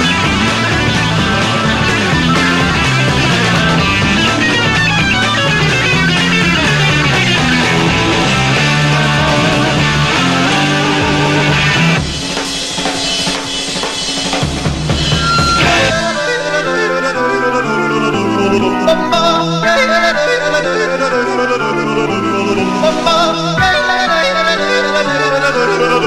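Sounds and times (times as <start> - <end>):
steady drum pulse: 0.0 - 16.2
live rock band playing: 0.0 - 21.0.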